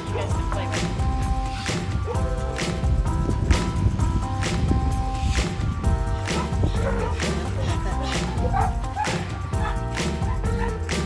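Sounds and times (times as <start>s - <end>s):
background music with steady beat: 0.0s - 11.0s
dog barking: 6.3s - 7.2s, 8.4s - 10.8s.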